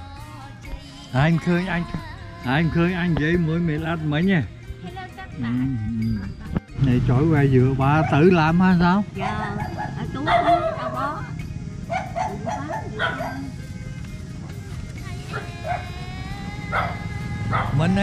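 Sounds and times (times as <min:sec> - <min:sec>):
background music: 0:00.0 - 0:18.0
low voices: 0:00.8 - 0:18.0
dog barking and yelping: 0:07.9 - 0:13.6, 0:15.3 - 0:15.9, 0:16.7 - 0:18.0.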